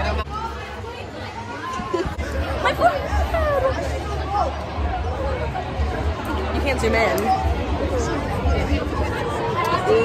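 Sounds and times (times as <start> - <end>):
crowd of girls talking: 0.0 - 10.0.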